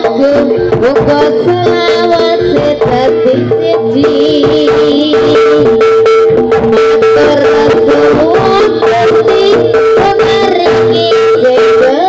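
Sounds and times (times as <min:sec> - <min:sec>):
wavering vocal melody: 0:00.0 - 0:06.0, 0:06.7 - 0:12.0.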